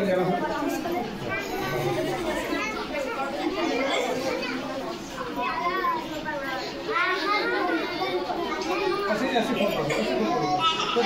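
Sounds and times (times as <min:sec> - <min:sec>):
voices chattering: 0:00.0 - 0:11.0.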